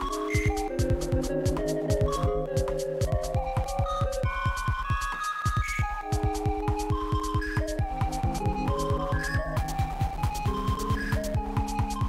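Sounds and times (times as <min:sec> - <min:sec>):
held synth notes: 0:00.0 - 0:05.2, 0:05.8 - 0:12.0
high ticking percussion: 0:00.0 - 0:12.0.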